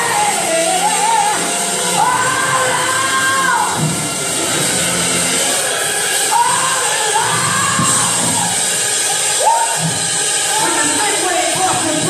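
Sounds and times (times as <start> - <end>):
singer's gliding vocal lines: 0.0 - 3.8
congregation cheering and shouting: 0.0 - 12.0.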